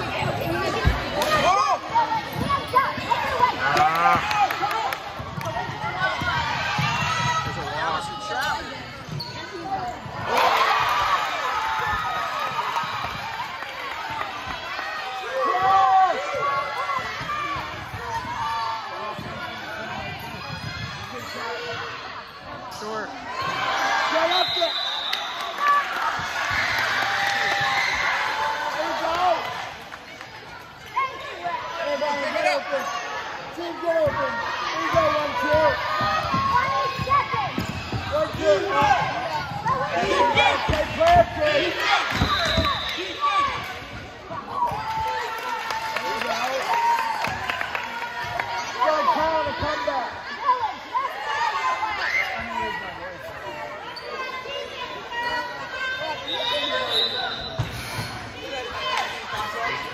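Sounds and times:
spectators talking: 0:00.0 - 0:59.9.

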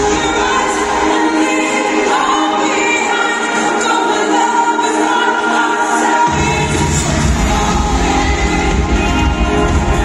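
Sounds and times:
live pop concert music: 0:00.0 - 0:10.0.

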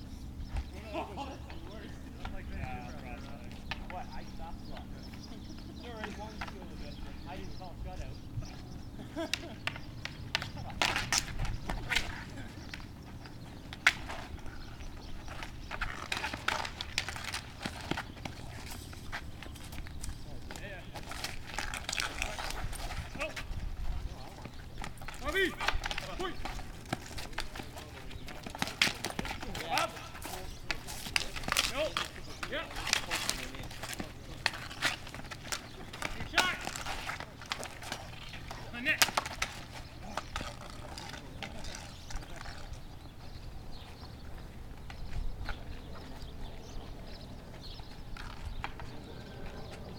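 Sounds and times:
hockey sticks clacking on asphalt: 0:00.4 - 0:49.9
players shouting: 0:24.8 - 0:39.3.

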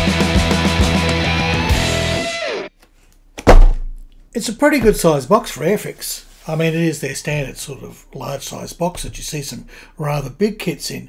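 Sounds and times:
electric guitar rock music: 0:00.0 - 0:02.7
box thumping on a workbench: 0:03.4 - 0:04.1.

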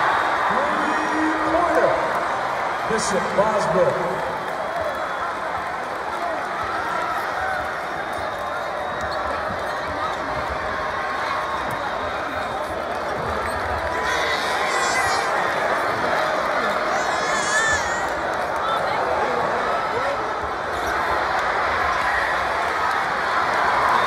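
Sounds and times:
arena crowd voices: 0:00.0 - 0:24.0.

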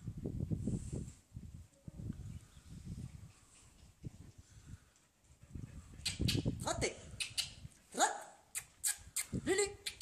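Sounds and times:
sharp clicks: 0:07.2 - 0:07.6.

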